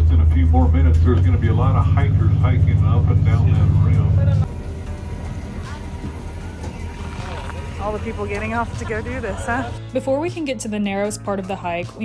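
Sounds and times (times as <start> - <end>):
bus engine drone: 0.0 - 9.8
passengers talking: 0.2 - 9.8
voices of people outdoors: 0.4 - 11.6.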